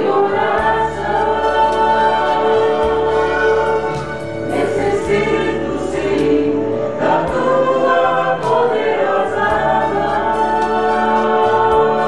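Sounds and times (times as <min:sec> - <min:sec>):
choir singing in harmony: 0:00.0 - 0:12.0
low bass accompaniment: 0:00.0 - 0:12.0.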